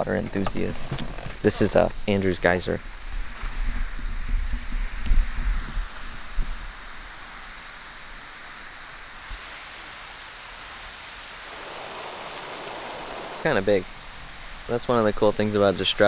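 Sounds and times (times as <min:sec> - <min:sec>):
water jet rushing hiss: 0:05.0 - 0:16.0.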